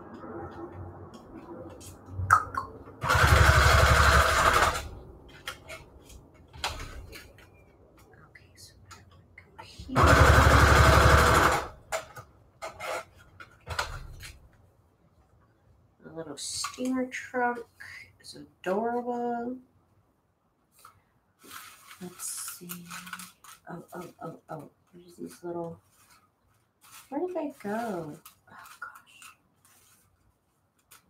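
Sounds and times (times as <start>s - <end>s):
sewing machine stitching paper: 3.0s - 5.0s, 9.9s - 11.8s.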